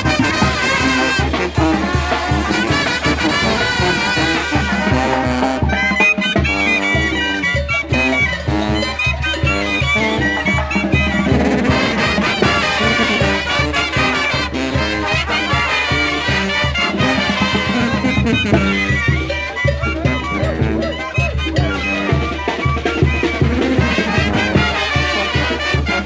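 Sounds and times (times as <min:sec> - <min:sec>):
steady drum beat: 0:00.0 - 0:26.0
trumpets playing melody: 0:00.0 - 0:26.0
sousaphone bass: 0:02.7 - 0:14.4, 0:16.8 - 0:24.7.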